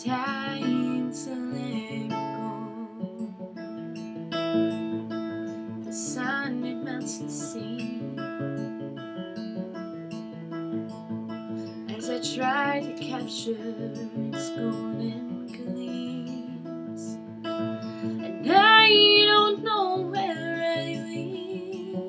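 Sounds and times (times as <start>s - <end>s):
woman singing: 0.0s - 3.4s, 5.8s - 8.7s, 11.8s - 17.3s, 17.9s - 22.0s
acoustic guitar: 0.0s - 22.0s.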